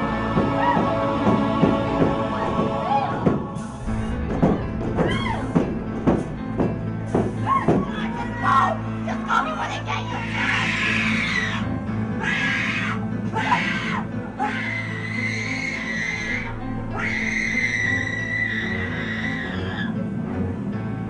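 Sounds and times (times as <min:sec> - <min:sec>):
droning haunted-house music: 0:00.0 - 0:21.0
high screeches or screams: 0:14.6 - 0:19.9.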